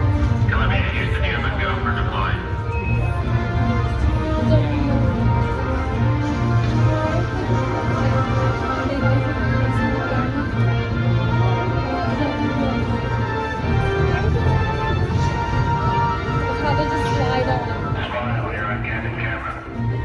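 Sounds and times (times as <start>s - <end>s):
film music over speakers: 0.0s - 20.0s.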